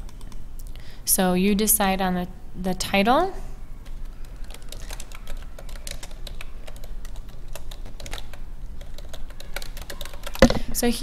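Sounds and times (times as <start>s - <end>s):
computer keyboard typing: 0.0s - 0.4s, 3.8s - 10.6s.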